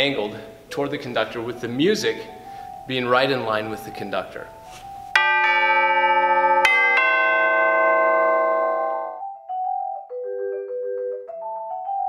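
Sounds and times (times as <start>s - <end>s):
tubular bells ringing: 0.4s - 9.3s.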